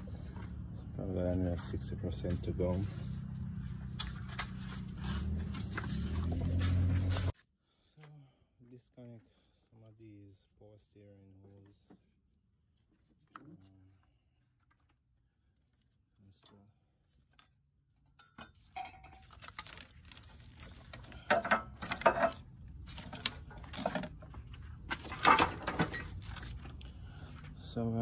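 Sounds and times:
metal tools and parts clinking: 18.1s - 19.6s, 21.0s - 24.2s, 25.0s - 26.6s.

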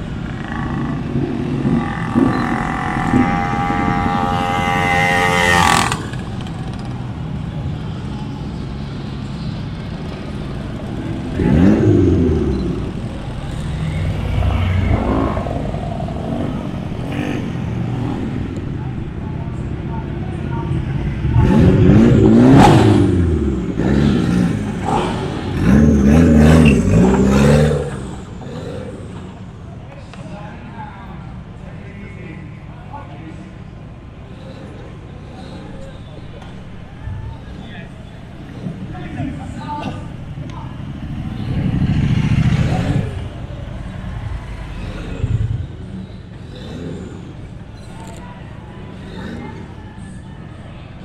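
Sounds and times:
car engine revving: 0.0s - 7.0s, 9.8s - 19.2s, 20.7s - 29.6s, 34.3s - 49.8s
motorcycles passing by: 0.0s - 51.0s.

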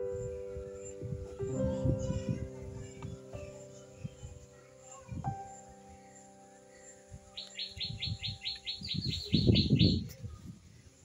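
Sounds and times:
bird chirping rapidly: 3.2s - 10.1s.

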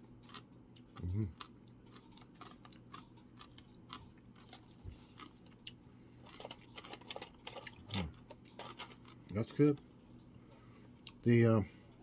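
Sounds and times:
person chewing crunchy chip: 0.0s - 9.6s.

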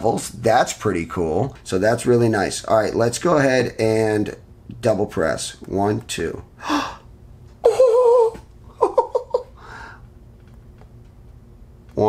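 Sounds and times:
man's wavering oooh: 7.6s - 8.4s.

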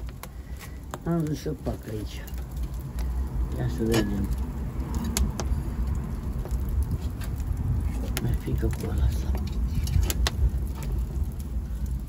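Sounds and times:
wood fire crackling and popping: 0.0s - 12.0s
low rumble: 2.3s - 12.0s.

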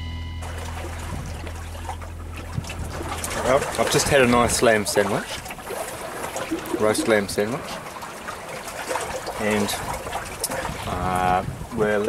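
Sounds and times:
low sustained music note: 0.0s - 4.6s
water washing along hull: 0.0s - 12.0s
wind noise: 0.0s - 12.0s
man talking: 3.3s - 5.3s, 6.7s - 7.7s, 9.4s - 9.8s, 10.8s - 12.0s.

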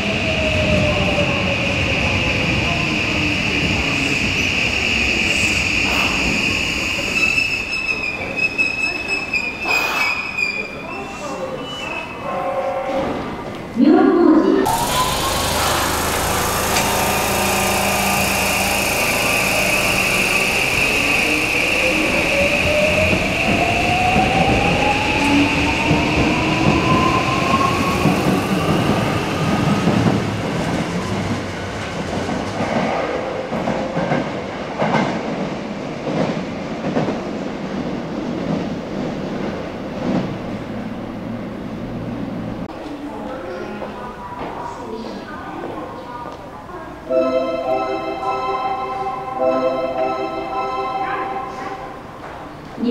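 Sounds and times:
steady high tone: 14.6s - 25.7s, 47.1s - 52.2s
wheels clicking over rail joints: 14.7s - 19.1s
electric train motor whine: 14.7s - 23.3s.

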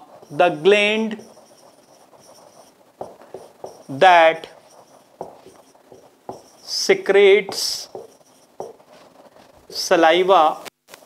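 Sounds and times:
marker pen scratching on whiteboard: 0.0s - 10.7s.

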